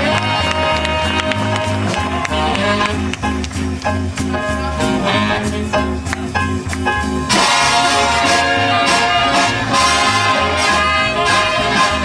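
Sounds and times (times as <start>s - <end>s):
big band swing music: 0.0s - 12.0s.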